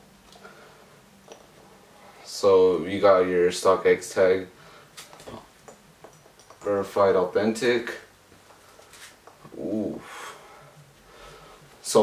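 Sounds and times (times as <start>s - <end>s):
soft breathy hiss: 0.0s - 5.6s, 7.6s - 12.0s.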